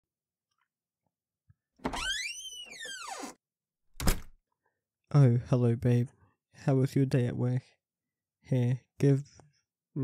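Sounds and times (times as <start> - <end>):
door hinge creaking: 1.8 - 3.4
door shutting with a knock: 4.0 - 4.4.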